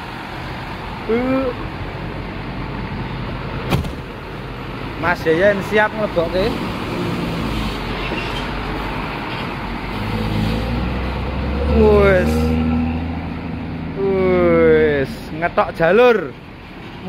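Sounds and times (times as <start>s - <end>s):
bus diesel engine running: 0.0s - 17.0s
man calling out: 1.0s - 1.6s, 11.7s - 12.6s, 14.0s - 15.4s.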